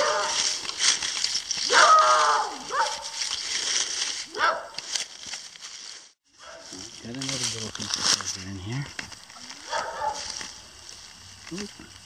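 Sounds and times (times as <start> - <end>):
dog barking: 0.0 - 0.5, 1.7 - 3.2, 4.3 - 4.8, 6.4 - 6.8, 9.6 - 10.4.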